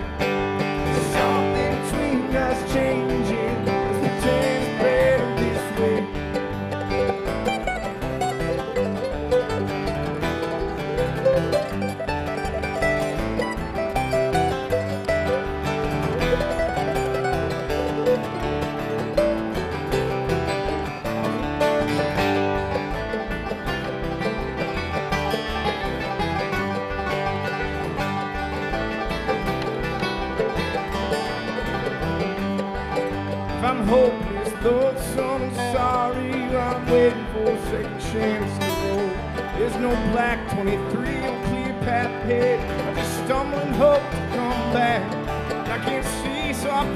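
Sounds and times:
acoustic guitar picking: 0.0 - 46.9
banjo: 0.0 - 46.9
mandolin picking: 0.0 - 46.9.

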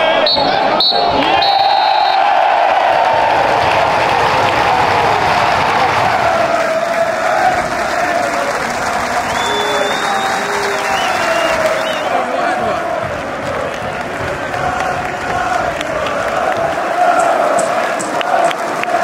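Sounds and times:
crowd applauding and cheering: 0.0 - 19.0.

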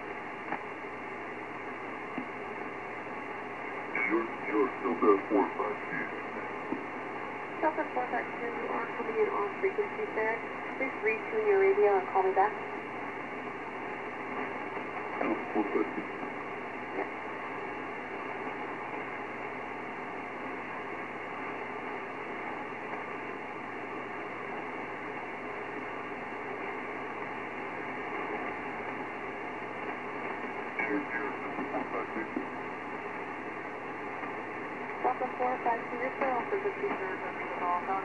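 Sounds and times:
shortwave radio static hiss: 0.0 - 38.0
faint broken radio voice: 3.6 - 6.9, 14.3 - 17.3, 30.5 - 32.9, 35.0 - 38.0.

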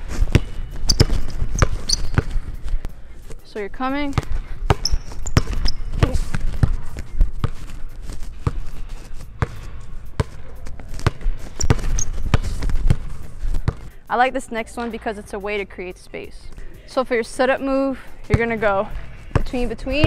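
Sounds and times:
basketball bouncing on hardwood floor: 0.3 - 2.4, 4.1 - 6.8, 11.0 - 13.1
sneaker squeaks: 0.3 - 2.5, 4.7 - 6.7, 11.0 - 13.8.

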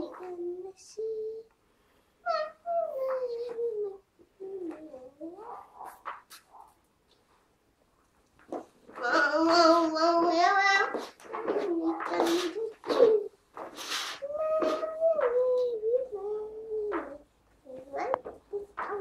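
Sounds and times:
child singing: 0.0 - 1.5, 2.2 - 5.8, 9.0 - 13.4, 14.2 - 19.0.

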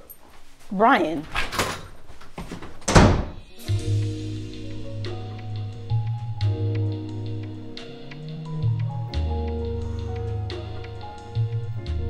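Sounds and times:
door slamming thud: 2.8 - 3.5
music with low bass: 3.6 - 12.0.

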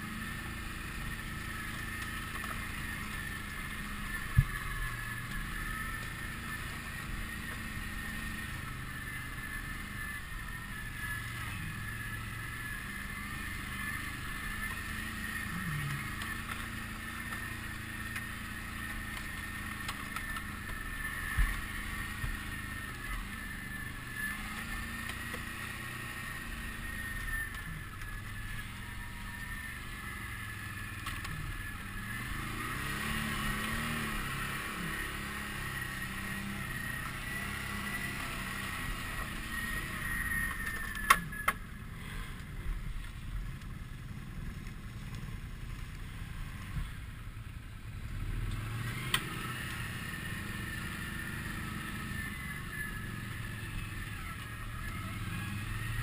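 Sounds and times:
atv engine whining: 0.0 - 56.0.

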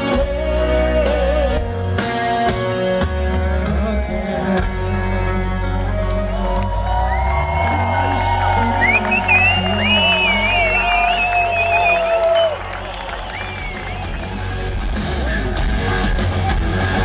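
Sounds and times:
live rock band: 0.0 - 17.0.

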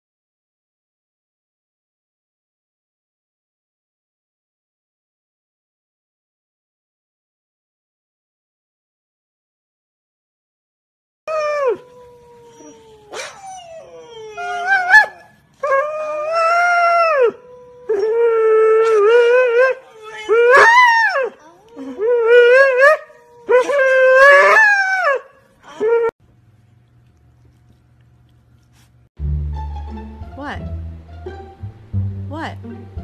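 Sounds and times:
huskies howling: 11.4 - 21.4.

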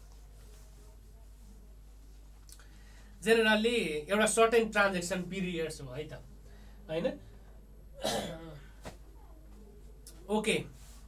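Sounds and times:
man clearing his throat: 8.0 - 8.7.

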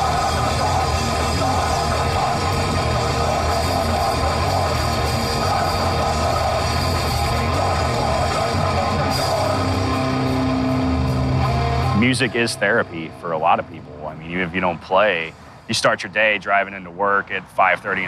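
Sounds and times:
grindcore band playing: 0.0 - 13.4.

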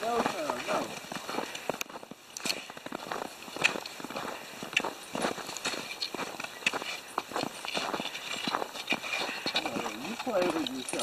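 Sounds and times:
footsteps crunching in snow: 0.0 - 11.0.

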